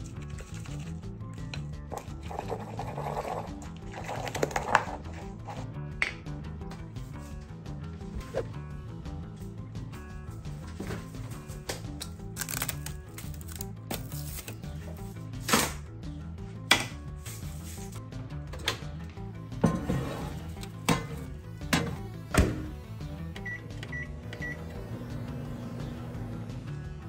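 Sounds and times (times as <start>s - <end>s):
background music: 0.0s - 27.0s
microwave humming: 19.7s - 26.8s
keypad beeps: 23.4s - 24.6s.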